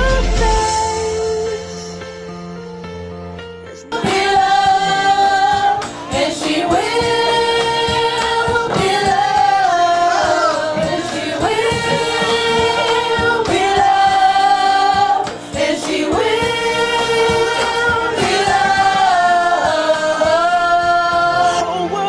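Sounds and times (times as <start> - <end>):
women singing pop song: 0.0 - 2.0, 3.9 - 22.0.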